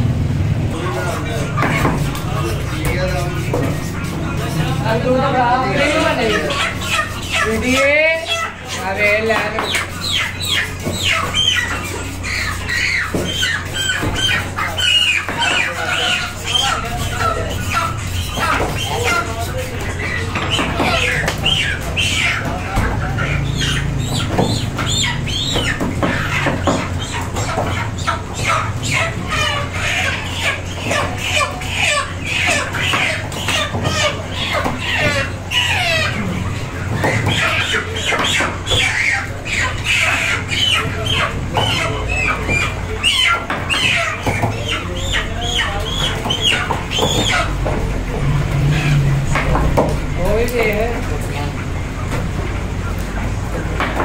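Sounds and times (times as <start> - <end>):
chickens clucking and squawking: 0.0 - 54.0
voices: 0.0 - 54.0.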